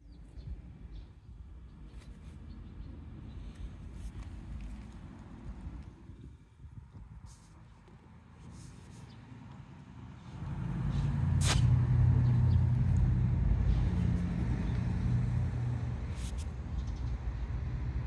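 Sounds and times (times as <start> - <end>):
low vehicle engine rumble: 0.0 - 18.0.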